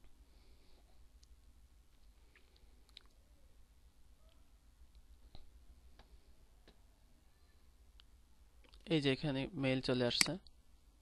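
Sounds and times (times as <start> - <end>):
low background hum: 0.0 - 11.0
man speaking: 8.8 - 10.4.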